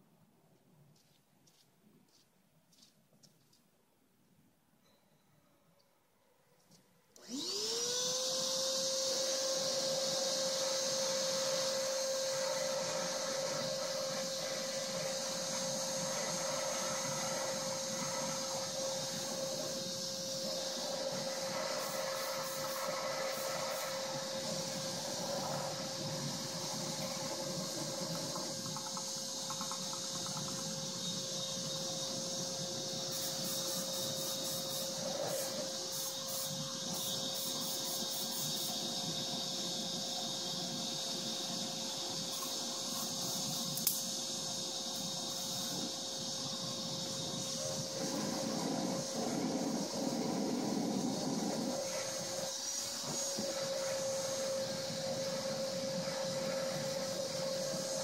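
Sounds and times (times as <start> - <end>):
shop vacuum motor whining: 7.2 - 58.0.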